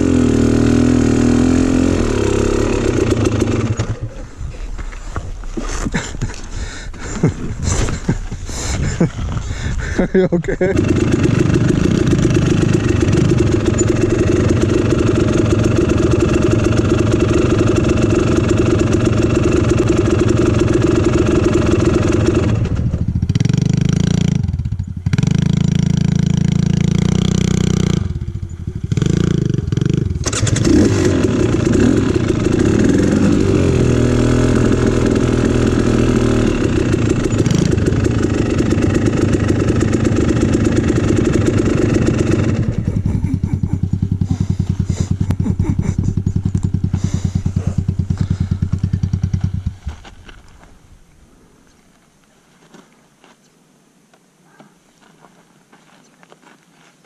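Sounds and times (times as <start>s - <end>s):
dirt bike engine revving: 0.0s - 4.2s, 9.9s - 50.0s.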